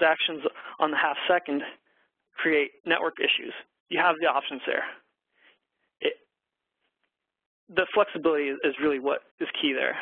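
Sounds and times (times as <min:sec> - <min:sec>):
man speaking: 0:00.0 - 0:01.8, 0:02.4 - 0:05.0, 0:07.7 - 0:10.0
faint breath: 0:00.5 - 0:00.8, 0:05.3 - 0:06.0.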